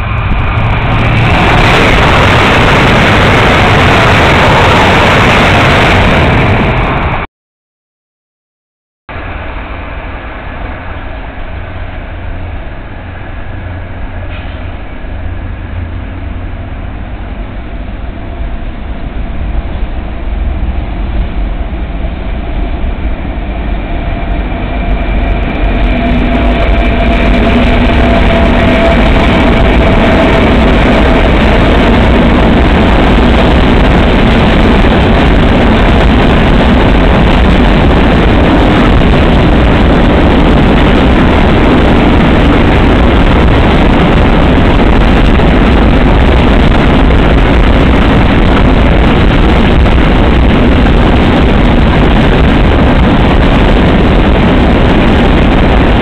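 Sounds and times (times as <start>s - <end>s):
steady whine: 0.0s - 7.3s, 9.1s - 56.0s
train wheels rumbling on rail: 0.0s - 7.3s, 9.1s - 56.0s.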